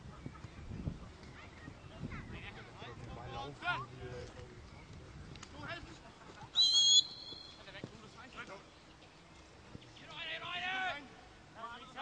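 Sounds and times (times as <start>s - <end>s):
referee's whistle blast: 6.6s - 7.6s.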